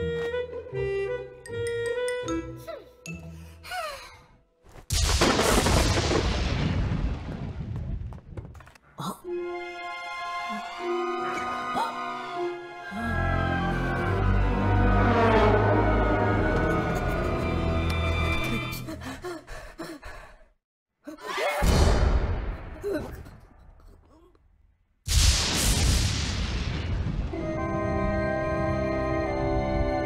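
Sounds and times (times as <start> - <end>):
thunderclap crack and rumble: 5.0 - 8.8, 25.1 - 28.7.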